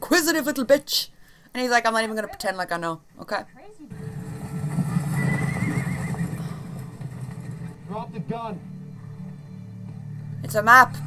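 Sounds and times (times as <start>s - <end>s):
low rumble: 3.9s - 11.0s
horse whinnying: 4.2s - 7.7s.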